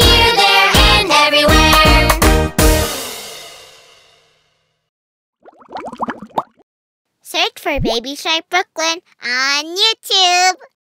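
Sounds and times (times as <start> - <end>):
bubbly cartoon popping effect: 5.4 - 6.6, 7.8 - 8.0
high-pitched cartoon voice speaking: 7.3 - 10.8.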